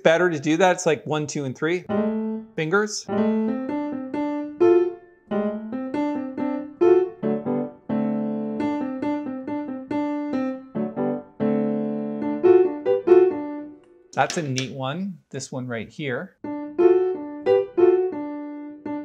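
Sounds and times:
piano playing jazz lick: 1.8s - 14.6s, 16.4s - 19.0s.

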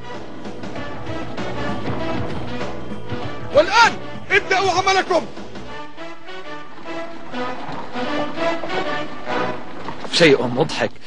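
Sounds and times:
background score music: 0.0s - 11.0s.

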